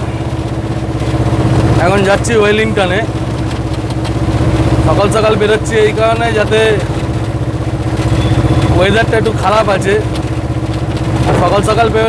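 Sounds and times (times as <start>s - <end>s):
truck engine droning: 0.0s - 12.0s.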